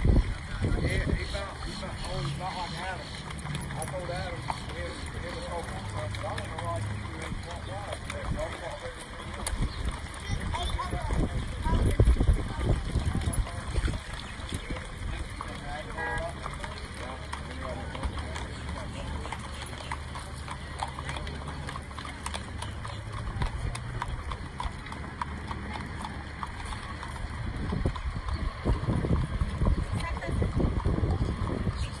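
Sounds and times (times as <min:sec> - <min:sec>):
hooves clip-clopping on pavement: 0:00.0 - 0:32.0.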